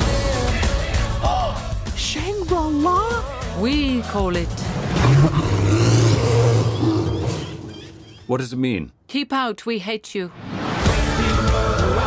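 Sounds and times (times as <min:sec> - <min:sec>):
rough roaring shout: 0:04.6 - 0:07.6.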